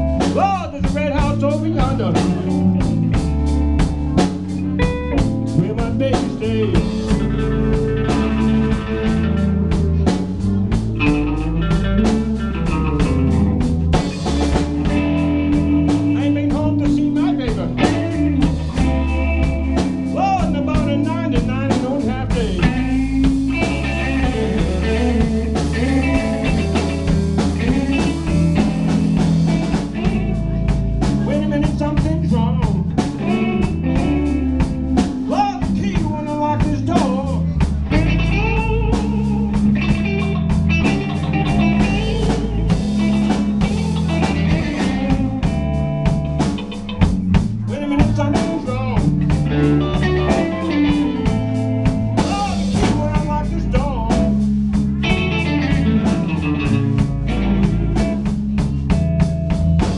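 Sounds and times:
blues-rock band playing: 0:00.0 - 0:59.9.

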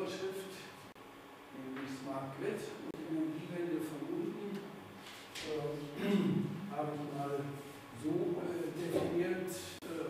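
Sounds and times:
man speaking: 0:00.0 - 0:00.8, 0:01.6 - 0:04.8, 0:05.4 - 0:10.0.

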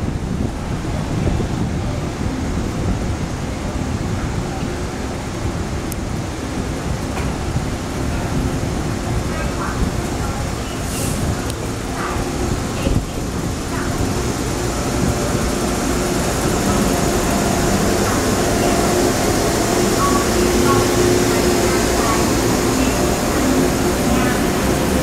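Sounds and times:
electric train running noise: 0:02.2 - 0:25.0.

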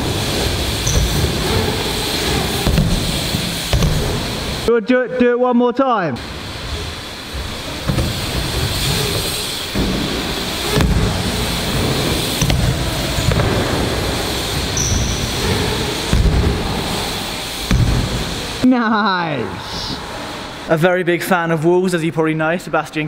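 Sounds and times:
bikes rolling over plywood ramps: 0:00.0 - 0:04.7, 0:06.3 - 0:18.6
wheels thudding on ramps: 0:00.0 - 0:04.7, 0:06.4 - 0:18.6.

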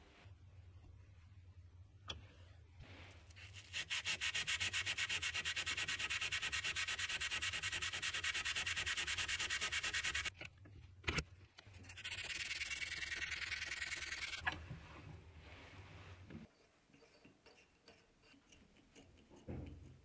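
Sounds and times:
soft smooth rubbing: 0:00.0 - 0:01.5, 0:02.2 - 0:03.8, 0:11.8 - 0:18.1
sanding metal pen barrel by hand: 0:03.4 - 0:10.3, 0:11.8 - 0:14.4.

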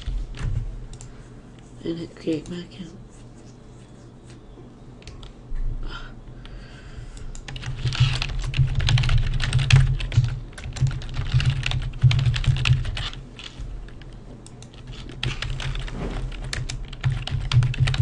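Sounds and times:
keyboard typing: 0:07.2 - 0:18.0.

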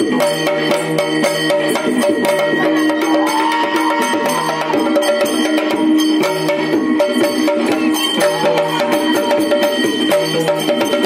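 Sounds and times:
rapid hand-drum strokes: 0:00.0 - 0:11.0.

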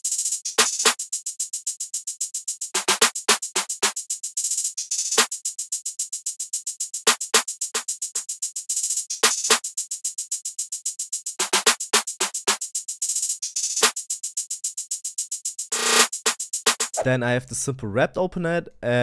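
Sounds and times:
fast hi-hats ticking: 0:00.0 - 0:17.1
clap pattern: 0:02.8 - 0:03.7, 0:11.4 - 0:11.8, 0:16.7 - 0:17.2.

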